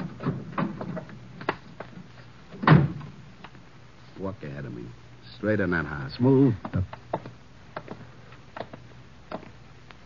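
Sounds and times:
car door slamming shut: 0:02.6 - 0:03.1.

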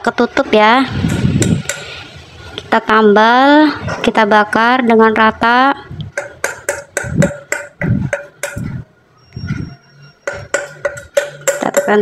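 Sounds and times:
metal spoon tapping steel pot: 0:01.1 - 0:02.0, 0:06.1 - 0:08.9, 0:10.2 - 0:12.0.

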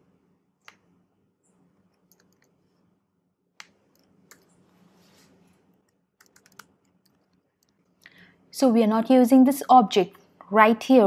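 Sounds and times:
computer keyboard key clicks: 0:06.2 - 0:07.2.

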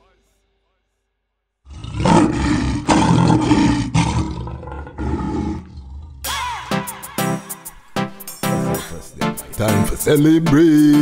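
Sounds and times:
lion roaring: 0:01.7 - 0:06.3.

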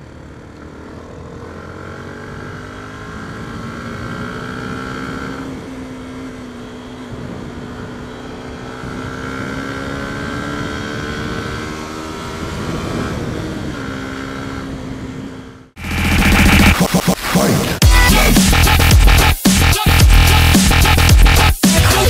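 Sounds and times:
motorcycle engine accelerating: 0:00.0 - 0:22.0.

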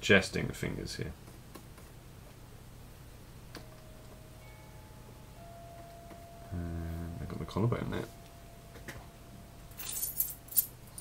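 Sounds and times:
low electrical hum: 0:00.0 - 0:11.0
faint thin steady tone: 0:03.5 - 0:11.0.

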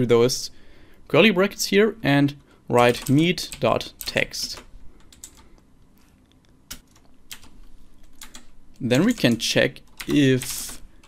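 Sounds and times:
computer keyboard keystrokes: 0:02.8 - 0:05.6, 0:06.7 - 0:10.8.

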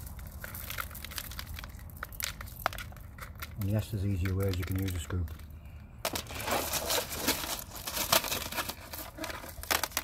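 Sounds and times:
clay pebbles clicking in plastic pot: 0:00.0 - 0:05.5, 0:08.1 - 0:10.0.

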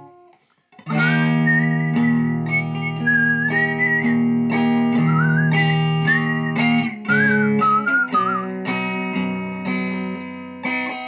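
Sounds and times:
guitar chords strummed: 0:00.0 - 0:11.0
sliding guitar lead line: 0:00.0 - 0:11.0.

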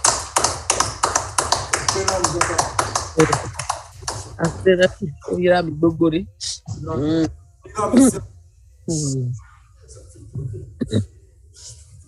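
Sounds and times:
hands clapping in rhythm: 0:00.0 - 0:04.6.

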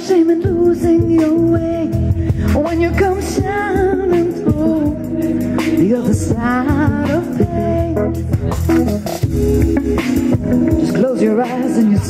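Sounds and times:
live soul band playing: 0:00.0 - 0:12.0.

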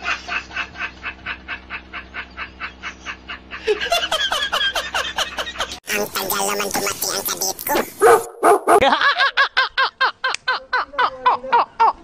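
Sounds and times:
dog barking rapidly: 0:06.5 - 0:08.8.

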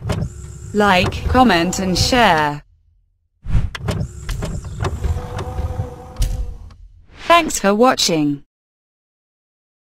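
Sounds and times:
mechanical whirring and sliding: 0:00.0 - 0:02.6, 0:03.4 - 0:07.0
steady hum: 0:00.0 - 0:03.0, 0:03.7 - 0:07.0
sharp clicks and knocks: 0:03.7 - 0:06.8.

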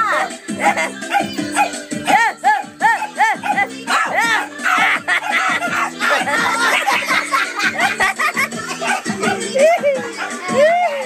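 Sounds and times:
music with a steady beat: 0:00.0 - 0:11.0
dog yipping: 0:01.1 - 0:01.8, 0:02.9 - 0:06.3.

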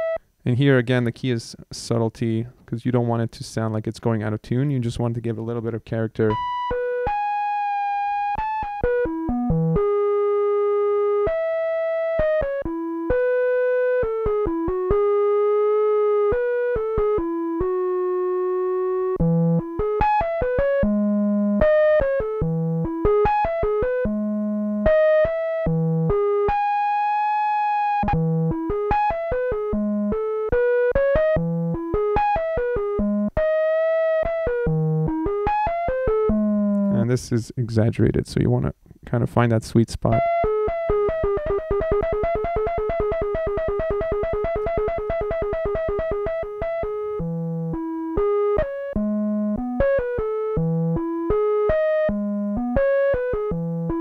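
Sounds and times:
synthesizer flute melody: 0:00.0 - 0:00.3, 0:06.2 - 0:37.0, 0:40.1 - 0:54.0.

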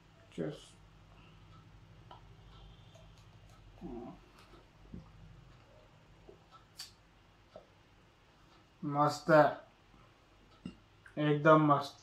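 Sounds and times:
faint steady hum: 0:00.0 - 0:12.0
man murmuring: 0:03.8 - 0:04.3.

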